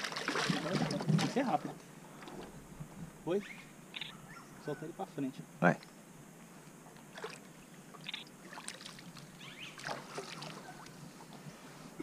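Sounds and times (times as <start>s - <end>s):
water splashing against boat: 0.0s - 1.8s, 7.1s - 11.4s.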